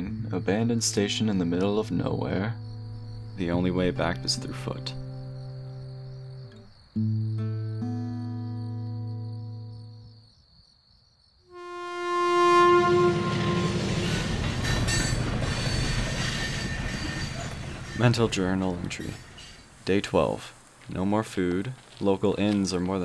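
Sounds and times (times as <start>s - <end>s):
crickets chirping: 0.0s - 23.0s
low held tones: 11.5s - 15.2s
train horn: 11.5s - 15.9s
passing train rumble and clatter: 12.7s - 20.2s.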